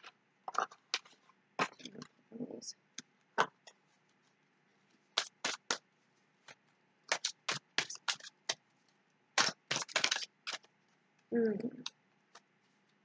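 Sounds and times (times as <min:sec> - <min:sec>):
cards being shuffled: 0:03.4 - 0:05.8, 0:06.4 - 0:10.7.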